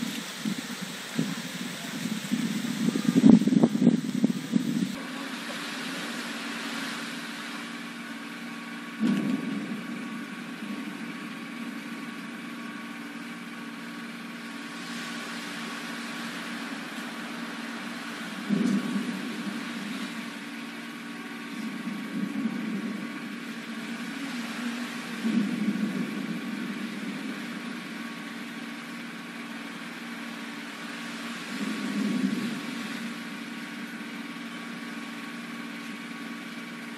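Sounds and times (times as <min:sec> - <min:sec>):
machine hum: 0:00.0 - 0:36.9.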